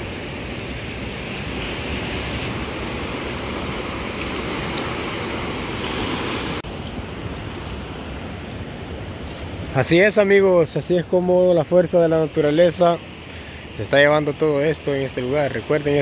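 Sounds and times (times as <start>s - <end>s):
ocean surf and rushing water: 0.0s - 16.0s.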